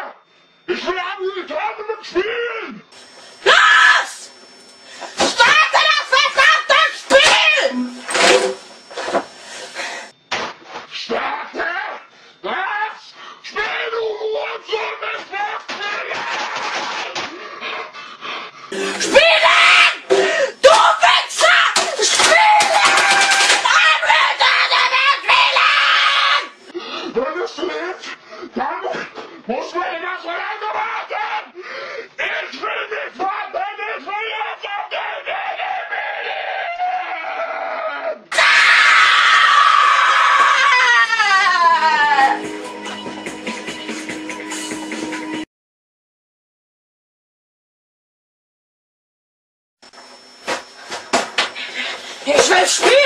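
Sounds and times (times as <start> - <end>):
boy wailing: 3.4 - 4.3, 5.2 - 8.0, 18.8 - 26.5.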